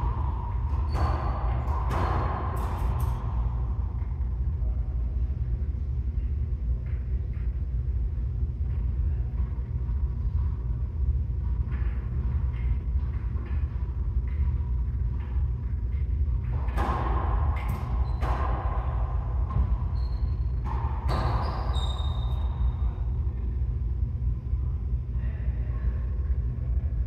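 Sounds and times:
low rumble: 0.0 - 21.1.

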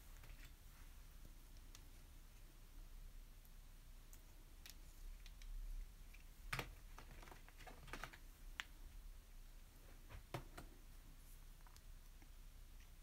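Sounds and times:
light irregular clicks and taps: 0.1 - 2.5, 3.3 - 8.8, 11.6 - 13.0.

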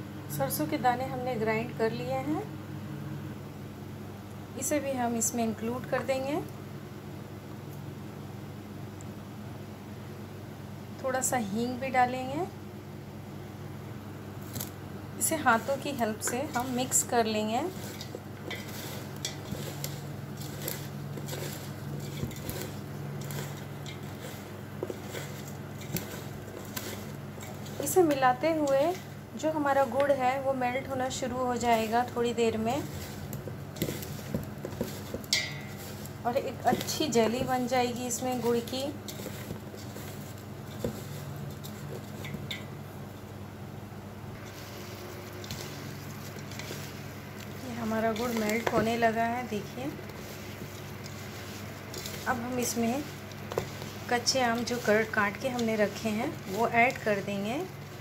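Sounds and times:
steady low hum: 0.0 - 58.0
hand mixing spices in steel pot: 14.3 - 43.4, 44.3 - 58.0.

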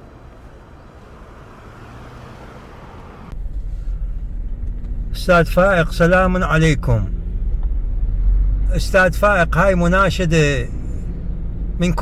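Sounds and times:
low rumble of engines: 0.0 - 12.0
road traffic hum: 0.0 - 12.0.

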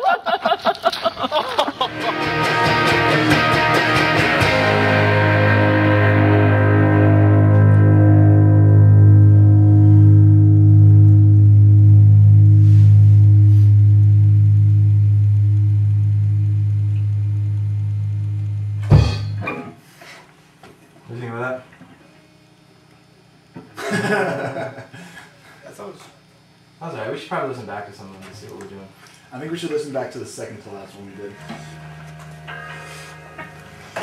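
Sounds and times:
electric guitars and bass chord: 1.8 - 19.8, 31.2 - 34.0
thump of strings muted: 18.8 - 19.6.

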